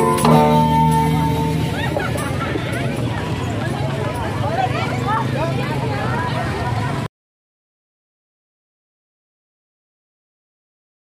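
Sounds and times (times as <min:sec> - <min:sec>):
many people talking: 0:00.0 - 0:07.1.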